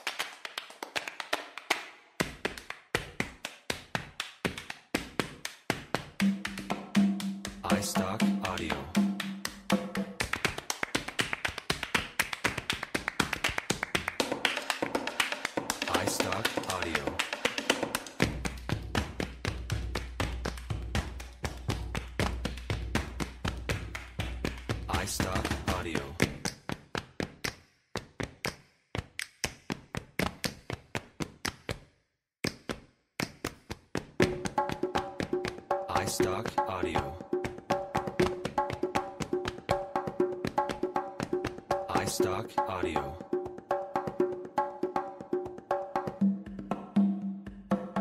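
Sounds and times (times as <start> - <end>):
body percussion taps claps and snaps: 0.0 - 36.4, 37.2 - 42.0
pitched drums: 5.9 - 11.2, 13.8 - 26.4, 34.2 - 48.0.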